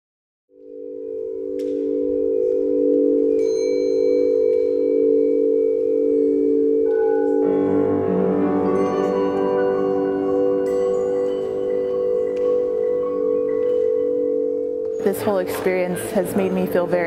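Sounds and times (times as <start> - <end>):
singing bowls sustained tones: 0.5 - 17.0
bell-like ringing tones: 0.6 - 17.0.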